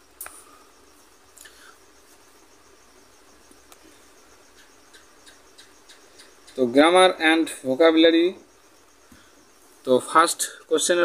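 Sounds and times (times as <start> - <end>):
insect chirping: 0.0 - 11.0.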